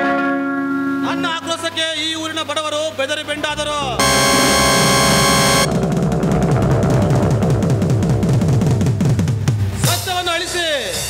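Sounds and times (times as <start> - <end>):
sustained keyboard chord: 4.0 - 5.7
drum roll on toms: 5.7 - 10.0.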